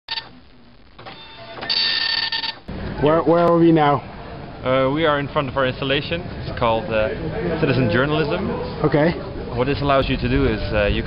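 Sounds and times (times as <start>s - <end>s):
dot matrix printer buzzing: 1.0s - 2.6s.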